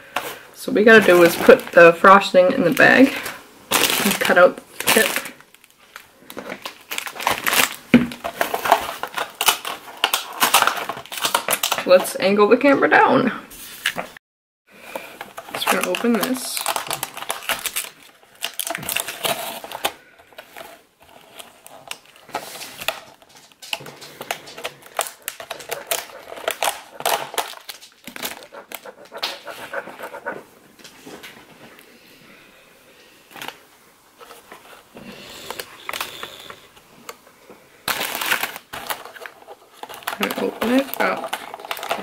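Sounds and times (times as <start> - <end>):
plastic container crackling: 0.2 - 12.1, 15.0 - 30.4, 37.8 - 42.0.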